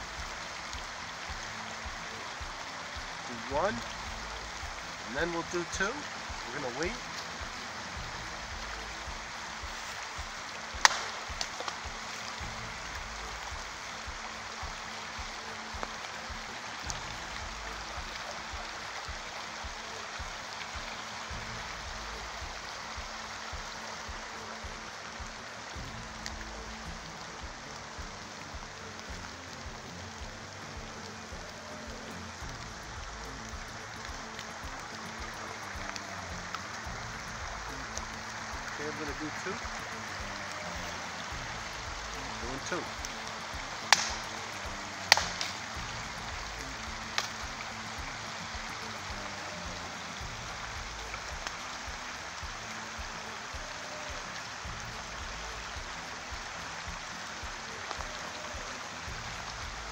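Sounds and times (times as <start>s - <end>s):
brook running: 0.0s - 59.9s
faint ticks: 0.0s - 59.9s
stick knocking on tree trunk: 10.8s - 12.0s, 43.9s - 44.4s, 45.1s - 45.6s.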